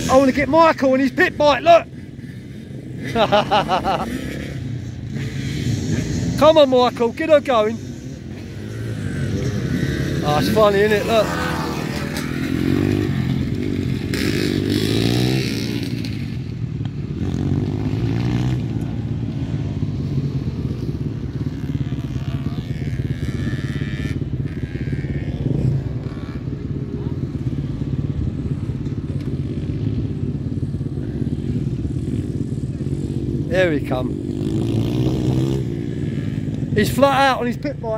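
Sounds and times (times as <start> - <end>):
dirt bike engines revving: 0.0 - 37.9
distant dirt bike engines droning: 0.0 - 37.9.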